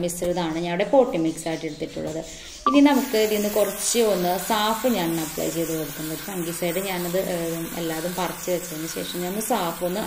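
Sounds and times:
woman talking: 0:00.0 - 0:10.0
water spraying on leaves: 0:02.9 - 0:10.0.

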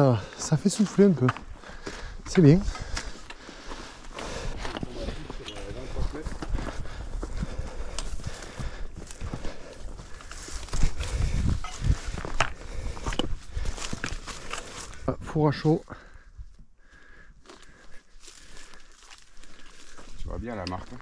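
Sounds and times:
footsteps crunching on stony trail: 0:00.0 - 0:21.0.

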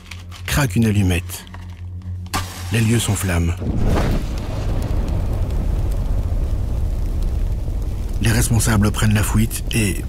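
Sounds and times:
low rumble of flames: 0:01.4 - 0:10.0.

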